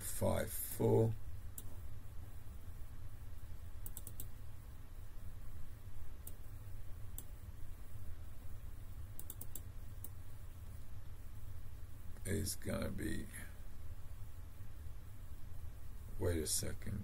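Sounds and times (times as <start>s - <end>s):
steady low hum: 0.0s - 17.0s
computer mouse clicks: 1.5s - 1.8s, 3.8s - 4.4s, 6.2s - 6.4s, 7.1s - 7.3s, 9.2s - 10.2s.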